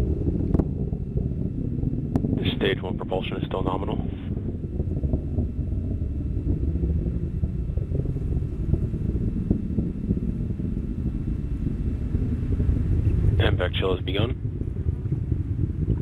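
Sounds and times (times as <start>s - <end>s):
rocket engine rumble with crackles: 0.0s - 16.0s.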